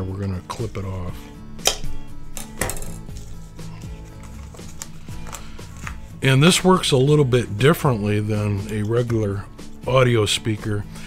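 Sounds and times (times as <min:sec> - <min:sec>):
soft background music: 0:00.0 - 0:11.0
handling clicks and taps: 0:04.2 - 0:06.0.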